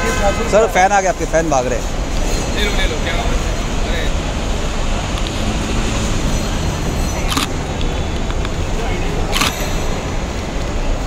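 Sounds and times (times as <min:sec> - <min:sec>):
murmuring voices: 0:00.0 - 0:11.0
traffic rumble: 0:00.0 - 0:11.0.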